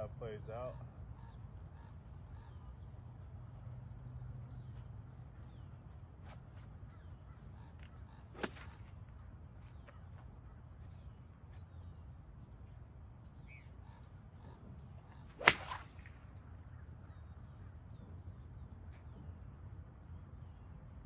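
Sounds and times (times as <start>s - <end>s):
golf club hitting ball: 8.4s - 8.8s, 15.4s - 16.2s
golf club swish: 8.4s - 9.0s, 15.3s - 16.1s.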